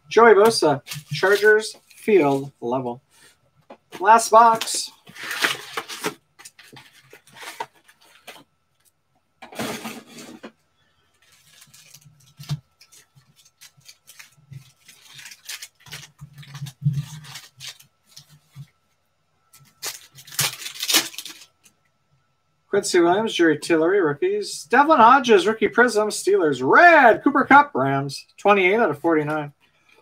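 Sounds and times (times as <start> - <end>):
foil packs crinkling and rustling: 0.6 - 2.5, 4.0 - 8.5, 11.1 - 18.8, 19.6 - 21.7.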